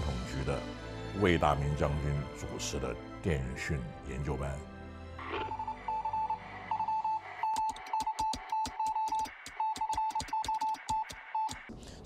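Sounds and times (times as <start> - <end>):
low soundtrack music: 0.0 - 7.7
morse code beeping: 5.2 - 11.6
rapid sharp clicks: 7.4 - 11.7.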